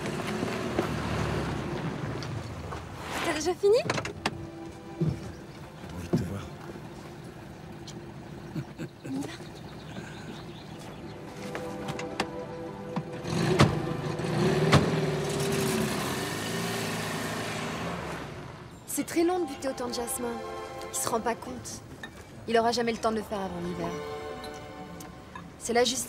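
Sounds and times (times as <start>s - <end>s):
car driving away: 0.0s - 3.1s, 11.8s - 18.8s
car doors shutting: 11.7s - 15.6s.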